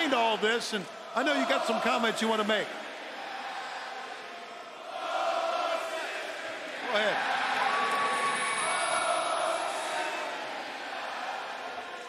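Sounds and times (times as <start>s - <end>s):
crowd cheering and shouting: 4.8s - 12.0s.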